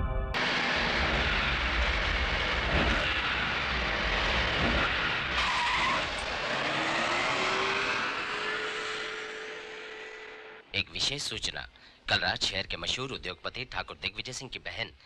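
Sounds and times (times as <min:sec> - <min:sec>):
loud steady rushing noise: 0:00.4 - 0:10.5.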